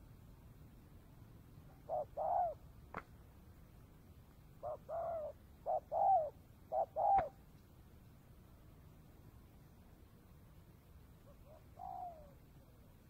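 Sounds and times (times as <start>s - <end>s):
dove cooing: 1.7s - 2.7s, 4.6s - 7.4s, 11.2s - 13.0s.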